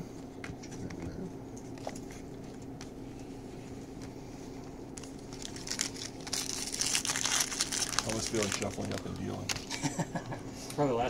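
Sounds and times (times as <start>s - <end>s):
steady low hum: 0.0s - 11.0s
foil wrappers crinkling and tearing: 5.0s - 9.9s.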